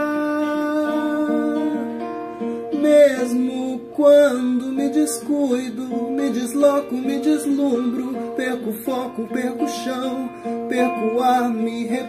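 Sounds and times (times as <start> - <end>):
man singing long note: 0.0 - 2.0
picked acoustic guitar: 0.0 - 12.0.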